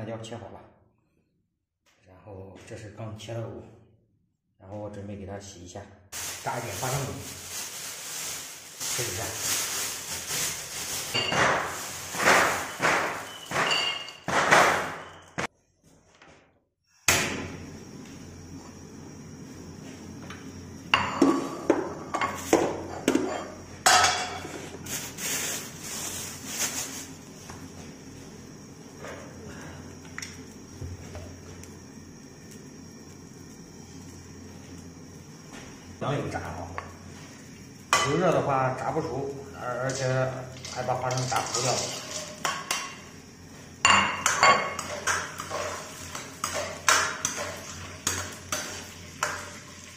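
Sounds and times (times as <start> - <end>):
plastic bag crinkling: 6.2 - 13.3, 24.9 - 27.2.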